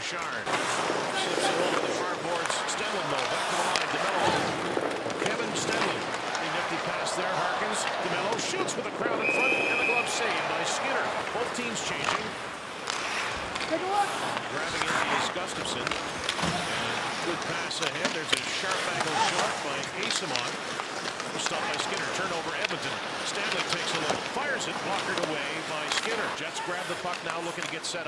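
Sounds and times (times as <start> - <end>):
hockey sticks and puck clacking: 0.0 - 28.0
crowd murmur: 0.5 - 22.2
referee whistle: 9.2 - 10.4.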